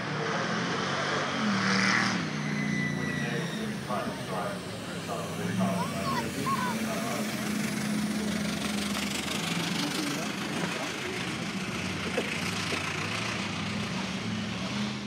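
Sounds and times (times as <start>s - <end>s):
vintage car engine running: 2.5s - 15.0s.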